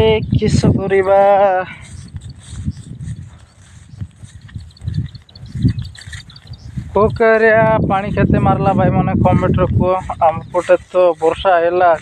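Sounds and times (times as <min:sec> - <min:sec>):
man's voice: 0:00.0 - 0:02.0, 0:06.8 - 0:12.0
footfalls in rice paddy: 0:00.0 - 0:12.0
rustling while walking: 0:00.0 - 0:12.0.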